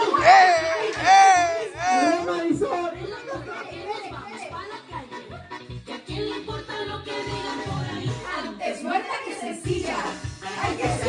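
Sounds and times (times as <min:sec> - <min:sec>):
women chattering and laughing: 0:00.0 - 0:05.4
music with steady beat: 0:09.6 - 0:11.0.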